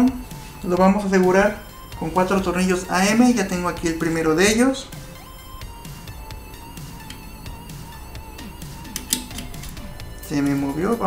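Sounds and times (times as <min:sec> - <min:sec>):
soft background music: 0:00.0 - 0:11.0
screwdriver and screw clicks: 0:08.9 - 0:09.8.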